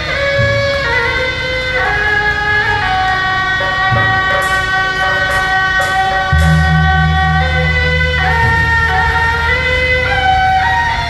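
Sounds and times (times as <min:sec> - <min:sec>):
percussion: 0:00.0 - 0:11.0
suona shawms playing reedy melody: 0:00.0 - 0:11.0
cymbal clashes: 0:03.6 - 0:10.8
heavy low rumble: 0:06.3 - 0:10.3.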